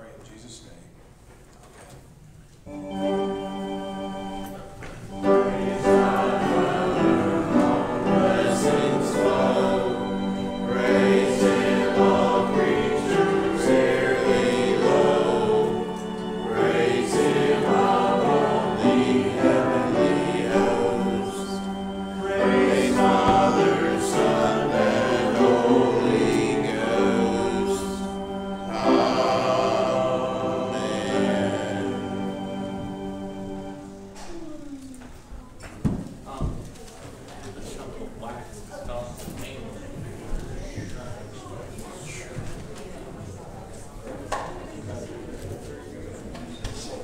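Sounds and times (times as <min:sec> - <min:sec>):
congregation singing a hymn: 0:02.7 - 0:34.4
sustained instrumental accompaniment: 0:02.7 - 0:34.5.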